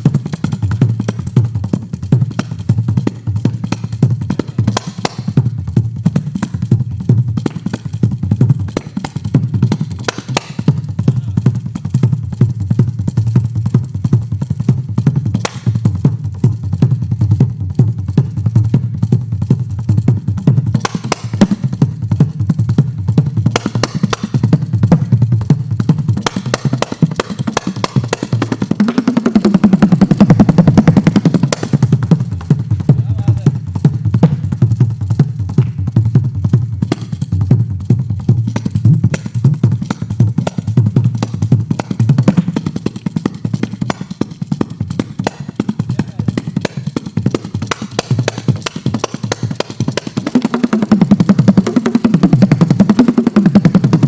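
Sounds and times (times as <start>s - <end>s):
frame drum with jingles: 0.0s - 54.0s.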